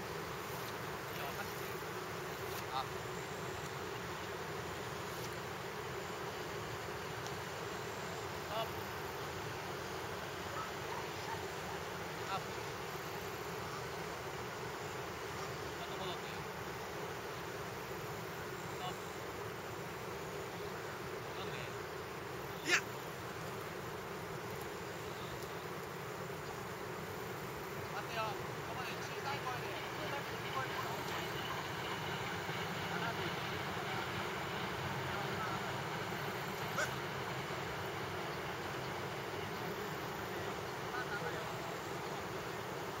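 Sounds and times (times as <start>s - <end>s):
steady background noise: 0.0s - 43.0s.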